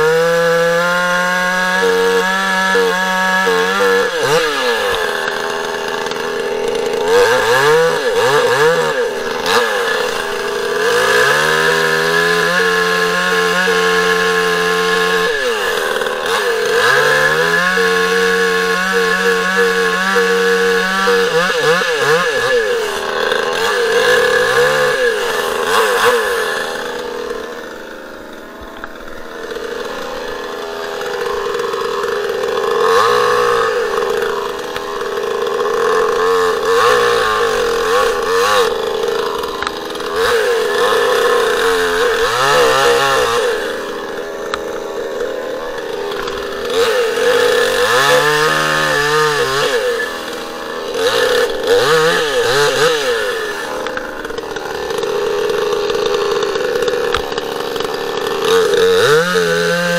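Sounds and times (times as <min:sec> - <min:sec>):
chainsaw cutting wood: 0:00.0 - 0:59.9.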